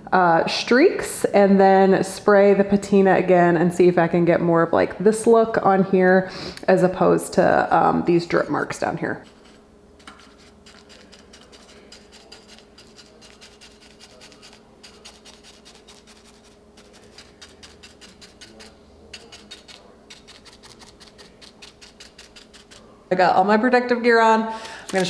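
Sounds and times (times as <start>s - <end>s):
brush scratching: 9.2s - 23.0s.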